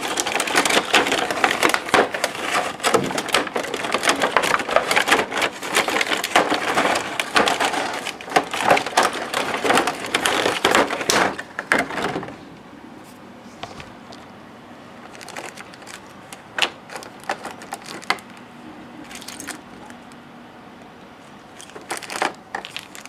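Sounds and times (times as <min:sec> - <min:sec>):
plastic packaging crinkling: 0:00.0 - 0:12.4, 0:15.0 - 0:20.2, 0:21.5 - 0:23.0.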